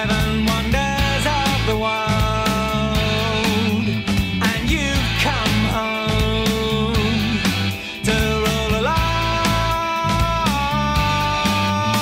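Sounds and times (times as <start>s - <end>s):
rock song with drums: 0.0s - 12.0s.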